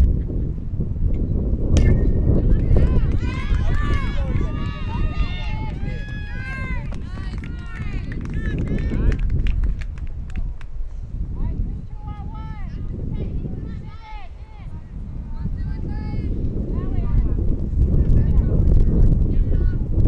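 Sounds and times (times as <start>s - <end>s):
young voices shouting and cheering: 2.2s - 9.3s, 11.4s - 17.4s.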